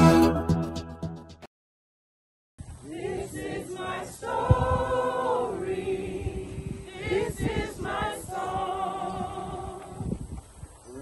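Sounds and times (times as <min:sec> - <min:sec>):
group singing unaccompanied: 0:02.8 - 0:10.2.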